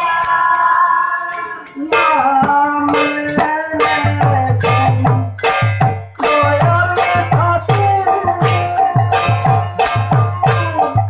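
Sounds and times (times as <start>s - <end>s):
drum strokes: 0.0s - 11.0s
jingling percussion: 0.0s - 11.0s.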